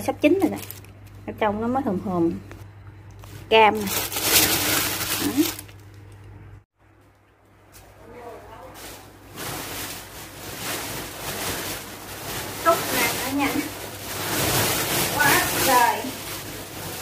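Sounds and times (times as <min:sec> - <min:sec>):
plastic bag crinkling: 0:00.0 - 0:01.5, 0:03.2 - 0:06.5, 0:08.5 - 0:17.0
large sack rustling: 0:03.2 - 0:05.8, 0:08.7 - 0:17.0.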